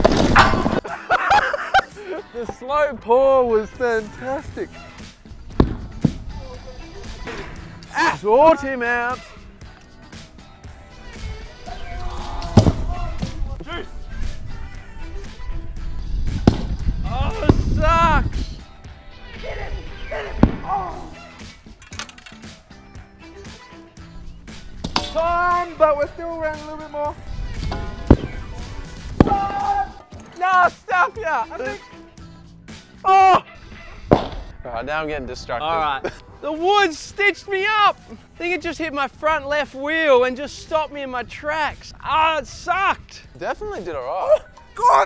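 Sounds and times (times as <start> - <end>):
object thudding on dirt: 0.0 - 0.8, 5.5 - 6.2, 12.5 - 13.4, 16.4 - 16.8, 24.8 - 25.2, 34.1 - 34.5
heavy objects thudding on ground: 0.0 - 0.9, 5.5 - 6.3, 12.5 - 13.4, 16.4 - 17.8, 27.6 - 29.8, 34.1 - 34.5
background music: 0.0 - 45.0.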